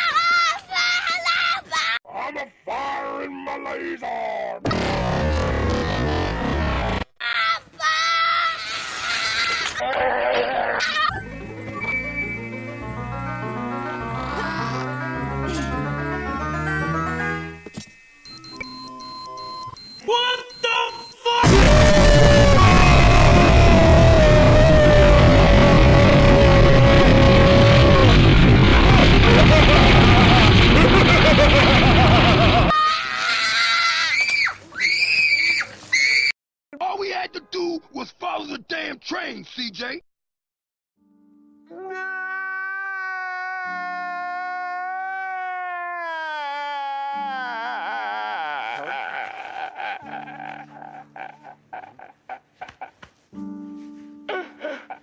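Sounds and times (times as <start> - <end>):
toddler screaming: 7.2 - 9.8, 21.4 - 28.1, 32.7 - 36.3, 41.7 - 49.4.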